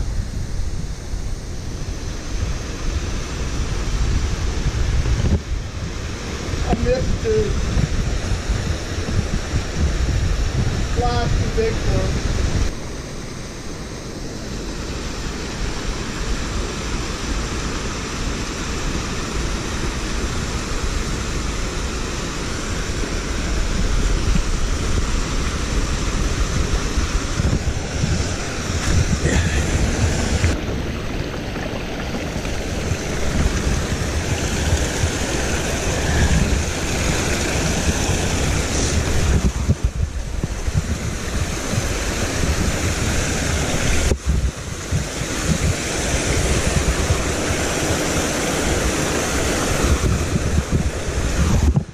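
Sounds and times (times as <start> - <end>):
wind buffeting microphone: 0.0 - 13.0, 13.8 - 51.9
creek running over boulders: 14.2 - 51.9.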